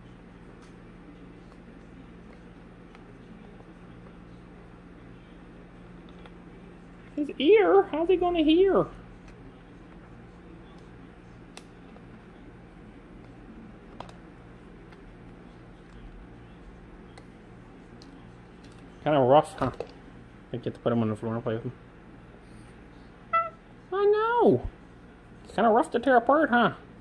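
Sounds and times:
cockatoo chirp: 0:23.3 - 0:23.6.

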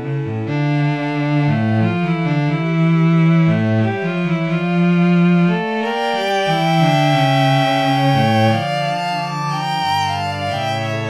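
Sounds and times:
string quartet playing: 0:00.0 - 0:11.0.

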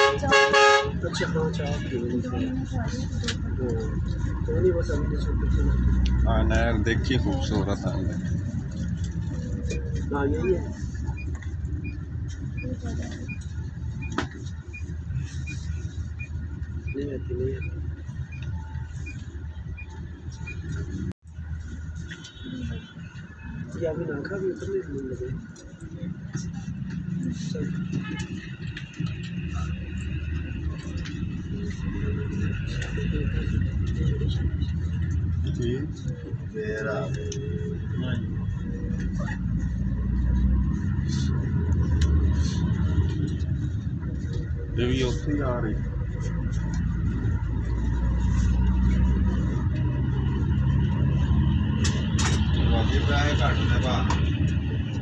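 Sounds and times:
road noise: 0:00.0 - 0:55.0
traffic rumble: 0:00.0 - 0:55.0
van running alongside: 0:00.0 - 0:55.0
vehicle engine drone: 0:00.0 - 0:55.0.

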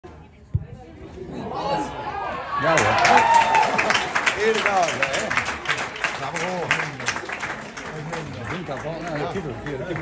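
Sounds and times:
spectators shouting: 0:01.5 - 0:04.2.

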